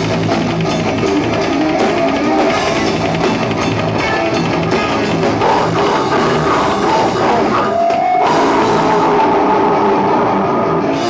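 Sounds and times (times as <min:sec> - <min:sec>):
distorted electric guitar chords: 0:00.0 - 0:11.0
heavy rock band playing: 0:00.0 - 0:11.0.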